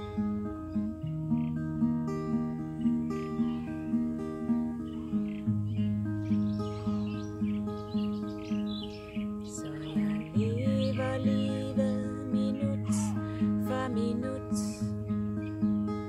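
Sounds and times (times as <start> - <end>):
birds chirping: 0.0 - 16.0
fingerpicked acoustic guitar: 0.0 - 16.0.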